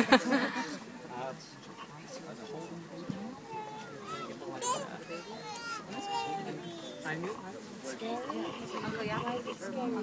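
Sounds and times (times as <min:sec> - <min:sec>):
overlapping voices chattering: 0:00.0 - 0:10.0
children's voices: 0:02.6 - 0:07.2.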